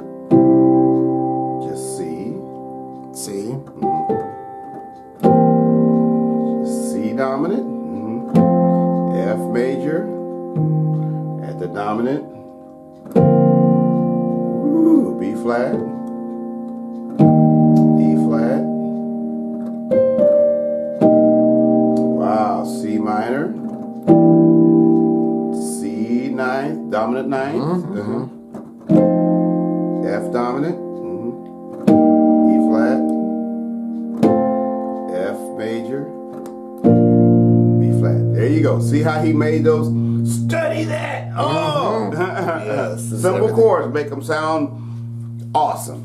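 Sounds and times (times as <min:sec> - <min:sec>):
piano chords ringing: 0:00.0 - 0:46.0.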